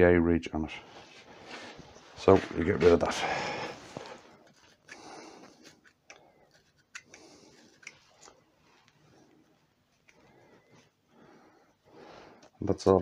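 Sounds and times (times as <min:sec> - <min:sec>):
small parts clicking: 0:04.4 - 0:08.4.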